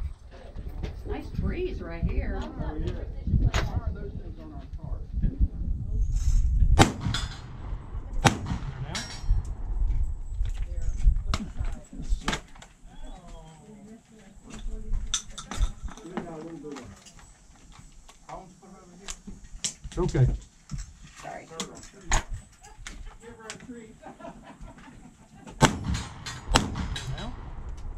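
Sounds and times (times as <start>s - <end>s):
shotgun shots: 6.8s - 9.7s, 25.6s - 27.9s
metallic clanging of targets: 8.8s - 9.4s, 25.8s - 27.4s.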